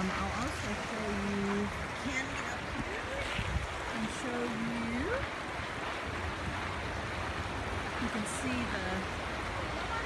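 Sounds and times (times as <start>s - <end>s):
river rushing over its bed: 0.0s - 10.0s.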